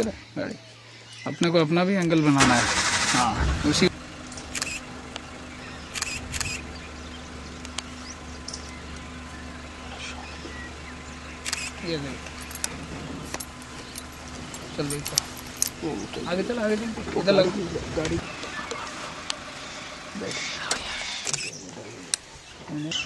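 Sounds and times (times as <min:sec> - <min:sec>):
vehicle engine humming: 0:00.0 - 0:23.0
sharp clicks: 0:04.3 - 0:05.3, 0:05.9 - 0:06.6, 0:07.6 - 0:09.1, 0:11.4 - 0:14.1, 0:20.6 - 0:22.2
low voices: 0:14.6 - 0:23.0.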